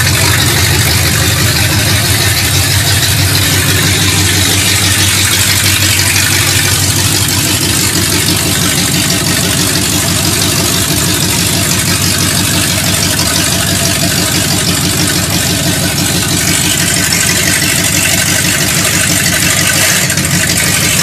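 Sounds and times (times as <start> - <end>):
loud open-pipe engine idling: 0.0 - 21.0.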